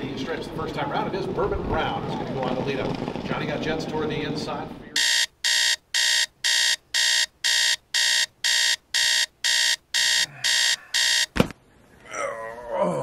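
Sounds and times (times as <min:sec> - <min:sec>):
electronic alarm beeping: 0:05.0 - 0:11.4.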